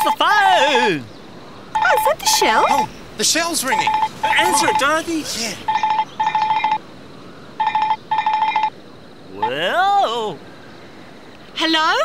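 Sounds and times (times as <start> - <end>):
telephone trilling ring: 3.8 - 5.0, 5.7 - 6.8, 7.6 - 8.7.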